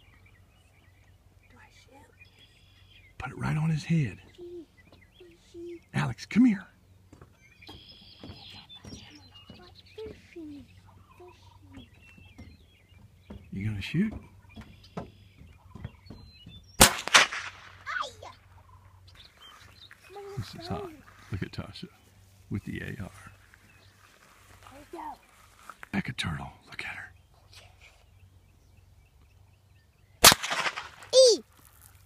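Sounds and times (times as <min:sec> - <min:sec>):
rifle shots cracking: 0:16.8 - 0:17.9, 0:30.2 - 0:31.1.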